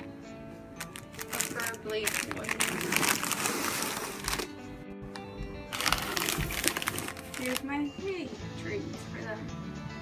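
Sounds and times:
background music: 0.0s - 10.0s
plastic packaging crinkling: 0.8s - 4.5s, 5.7s - 7.7s.

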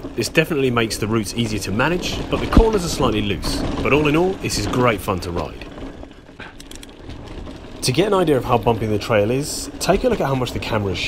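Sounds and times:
bike clicks and rattles: 0.0s - 11.0s
bike tyres on dirt trail: 0.0s - 11.0s.

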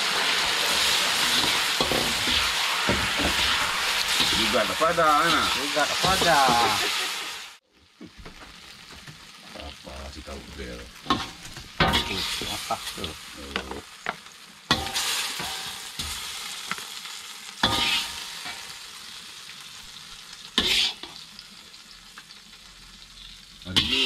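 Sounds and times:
metal spatula scraping wok: 0.0s - 7.4s, 17.6s - 18.7s, 20.6s - 21.2s, 23.8s - 24.0s
chicken sizzling in hot oil: 0.0s - 24.0s.

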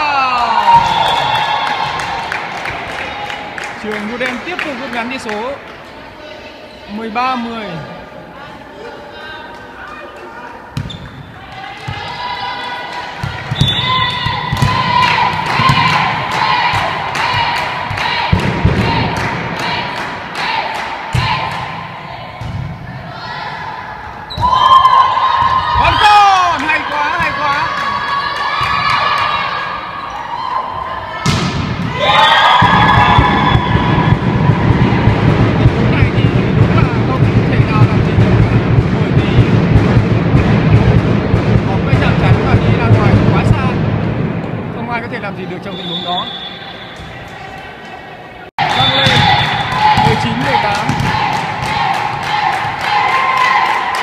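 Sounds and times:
players calling and shouting: 0.0s - 54.0s
volleyball thuds: 13.2s - 19.5s, 31.2s - 44.7s, 48.6s - 52.8s.

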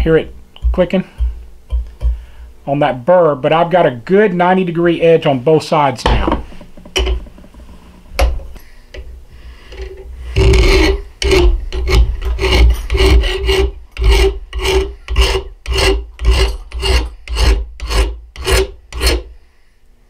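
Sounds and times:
hand file rasping on steel: 9.7s - 19.3s.

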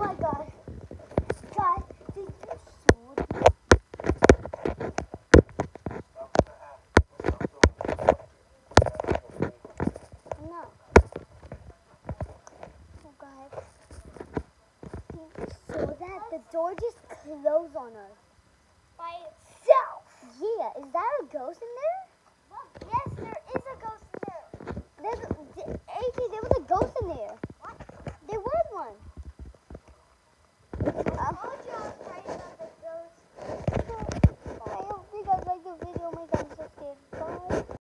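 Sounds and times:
young girl voice: 0.0s - 0.6s, 1.4s - 3.2s, 15.1s - 18.2s, 19.0s - 29.0s, 31.1s - 33.2s, 33.8s - 37.7s
sharp clicks and knocks: 0.0s - 12.7s.

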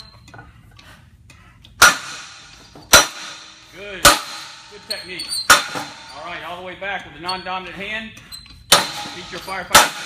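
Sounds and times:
sledgehammer clanging on metal: 1.8s - 6.4s, 8.7s - 10.0s.

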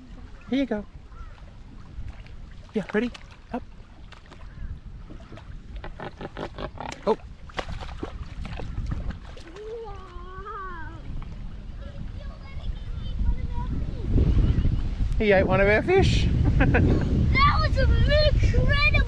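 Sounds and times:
splashes in water: 0.0s - 11.4s
wind rumbling on microphone: 0.0s - 19.0s.

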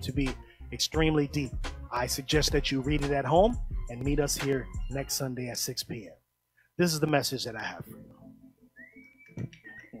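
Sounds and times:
faint high whistle-like tone: 8.8s - 10.0s.

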